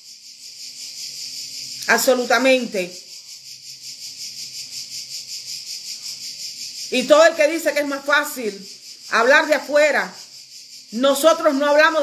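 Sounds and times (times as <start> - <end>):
high-pitched pulsing hiss: 0.0 - 12.0.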